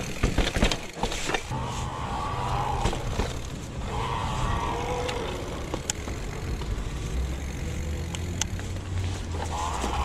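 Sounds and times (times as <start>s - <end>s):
bike clicks: 0.0s - 1.6s, 2.4s - 10.0s
bike tyre noise on asphalt: 0.0s - 10.0s.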